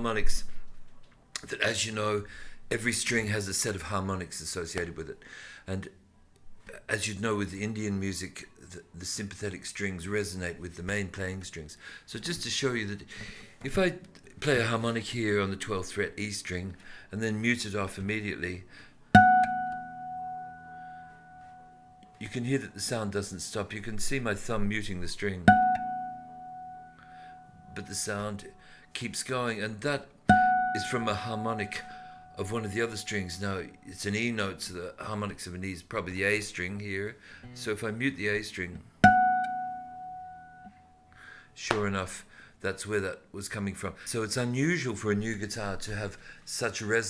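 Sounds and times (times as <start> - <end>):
nylon-string guitar harmonic: 19.1 - 22.2, 25.4 - 28.8, 30.3 - 34.0, 37.4 - 37.8, 39.0 - 41.2
strings resonating in sympathy: 30.3 - 33.6.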